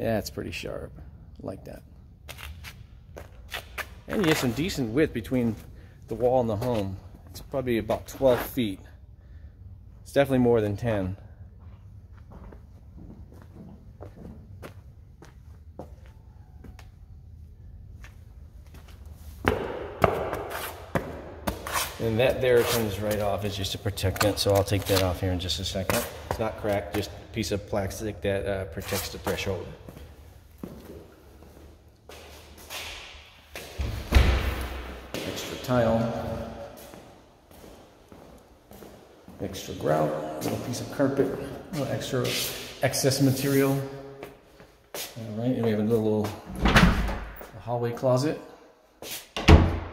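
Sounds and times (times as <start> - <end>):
footsteps on concrete floor: 2.3 - 8.8, 11.6 - 16.9, 18.0 - 27.5, 28.8 - 42.7, 43.3 - 46.5
door unlatching and opening: 46.5 - 47.4.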